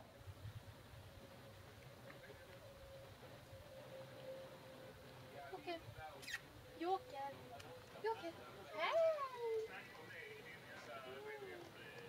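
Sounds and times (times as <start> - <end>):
dog whining: 8.7 - 9.7.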